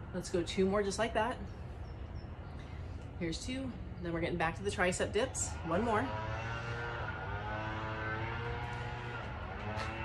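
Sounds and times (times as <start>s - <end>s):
engine running steadily: 2.4s - 10.0s.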